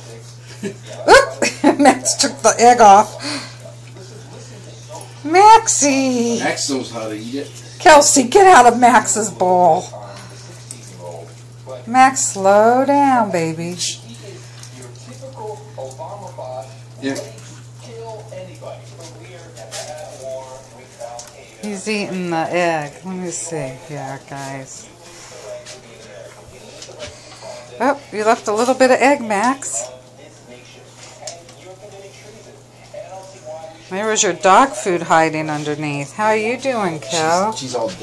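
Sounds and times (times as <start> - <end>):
dog chewing and licking: 0.0 - 38.0.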